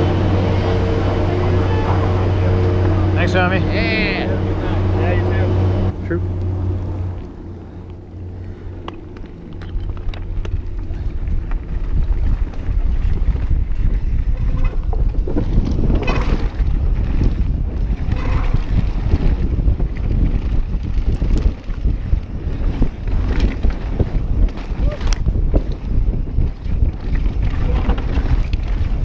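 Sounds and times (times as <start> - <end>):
bike tyres rumbling on dirt: 0.0 - 29.0
wind buffeting microphone: 0.0 - 29.0
clicks and clatters: 8.8 - 12.7.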